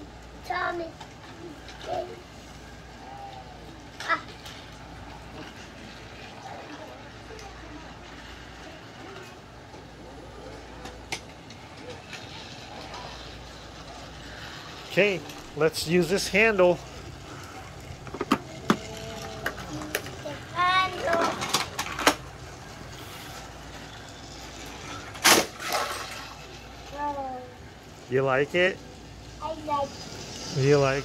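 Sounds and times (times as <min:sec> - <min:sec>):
child vocal sounds: 0:18.4 - 0:21.5.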